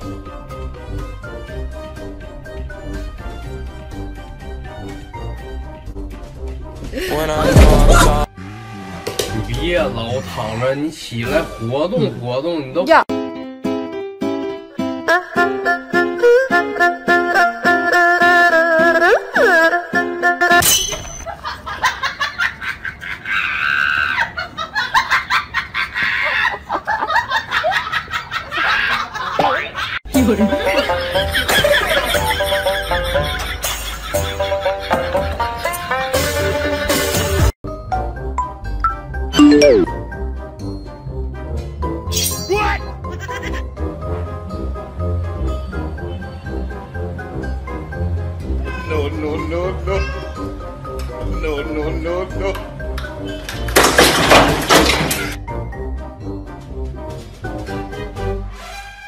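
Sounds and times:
background music with bass: 0.0 - 9.9
people laughing and shrieking: 22.5 - 30.0.

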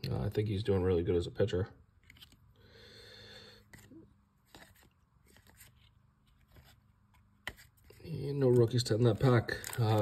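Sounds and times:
paper cards rustling: 2.0 - 2.5, 3.6 - 10.0.

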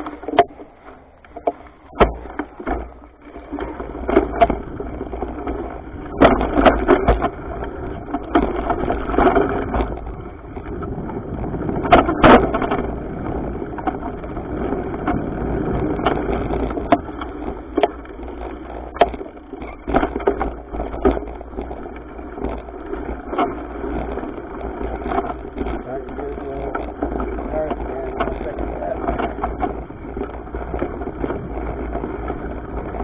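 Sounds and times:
bike rolling rumble: 0.0 - 33.0
bike wheels clattering over bumps: 0.0 - 33.0.

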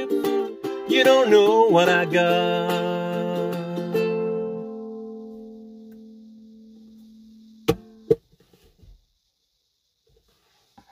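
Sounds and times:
ukulele chord ringing: 0.0 - 6.7.

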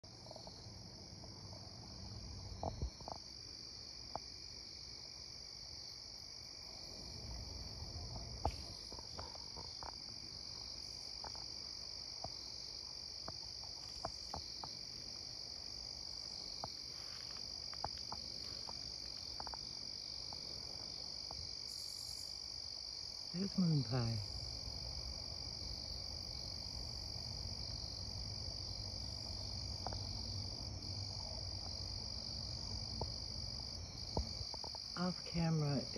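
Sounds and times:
insects trilling: 0.1 - 35.9.

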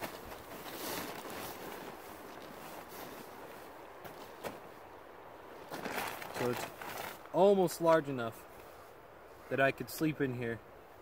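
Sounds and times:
plastic tarp rustling and crinkling: 0.0 - 4.6, 5.6 - 7.3.

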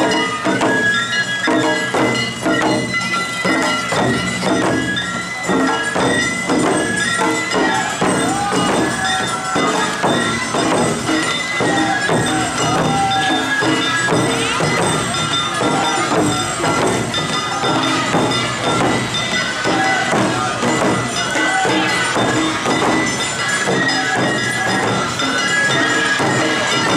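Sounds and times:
bell-like metal percussion: 0.0 - 26.9
barrel drum beaten with sticks: 1.7 - 25.3.

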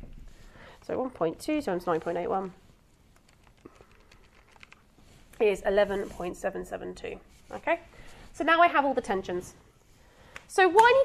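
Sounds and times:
calculator keys tapping: 3.2 - 4.8.

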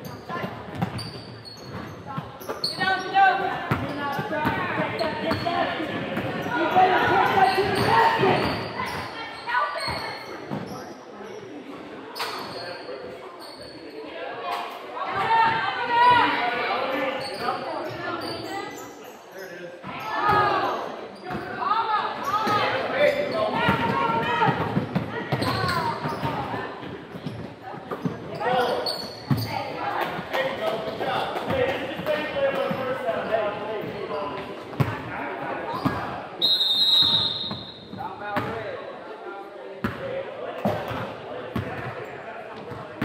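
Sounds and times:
sneakers squeaking: 0.0 - 14.1, 15.1 - 38.6
basketball bouncing on court: 0.3 - 2.3, 3.7 - 5.5
referee whistle: 36.4 - 37.9.

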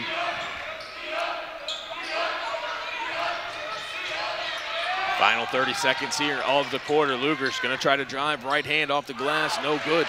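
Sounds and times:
voices chattering and calling out: 0.0 - 10.0.

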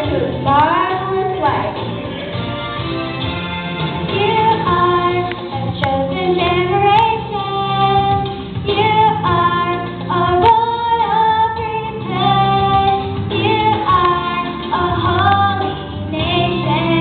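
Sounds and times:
instrumental accompaniment: 0.0 - 17.0
girl singing into microphone: 4.1 - 17.0.

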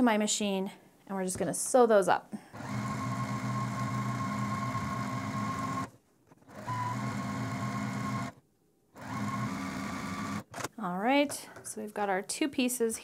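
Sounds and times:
sewing machine running: 2.6 - 8.4, 9.0 - 10.5.

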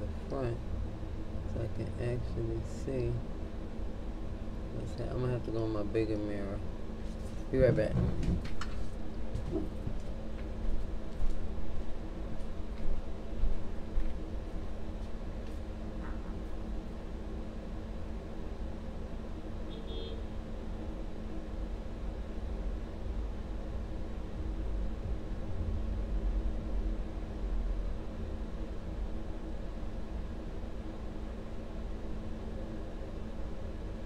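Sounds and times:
low background rumble: 0.0 - 19.7, 20.4 - 34.0
faint hum: 0.0 - 34.0.

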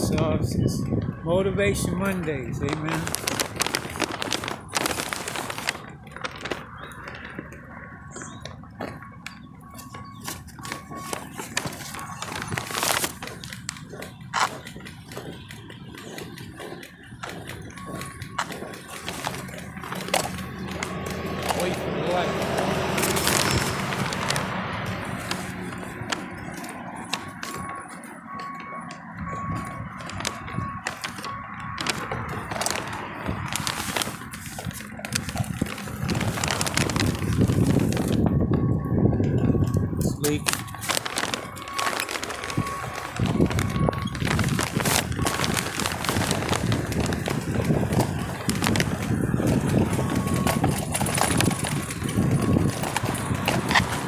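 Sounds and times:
wheelchair rolling over asphalt: 0.0 - 54.0
wind buffeting microphone: 0.0 - 54.0.

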